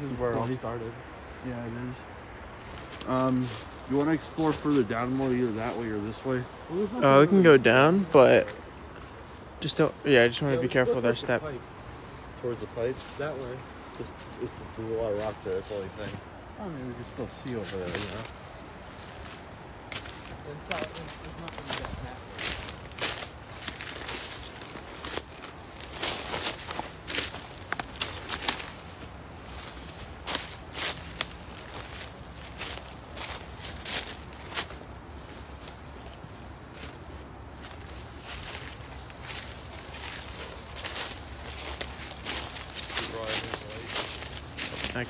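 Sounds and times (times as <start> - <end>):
footsteps crunching dry leaves: 2.5 - 9.4, 12.8 - 45.0.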